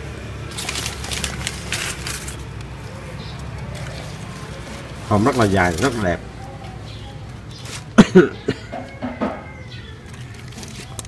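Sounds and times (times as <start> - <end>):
man laughing: 8.0 - 8.8.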